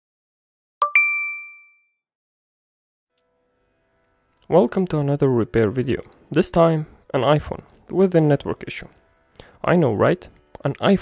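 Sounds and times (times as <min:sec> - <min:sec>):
two-note chime: 0:00.8 - 0:02.0.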